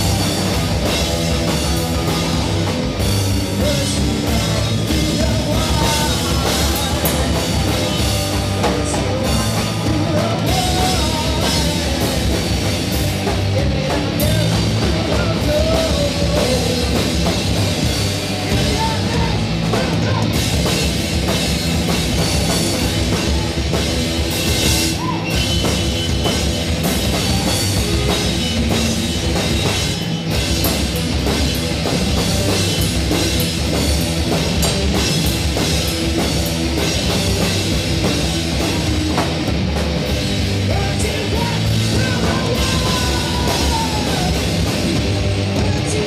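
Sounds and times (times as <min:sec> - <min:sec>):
drum kit with cymbals: 0:00.0 - 0:46.0
electric guitars: 0:00.0 - 0:46.0.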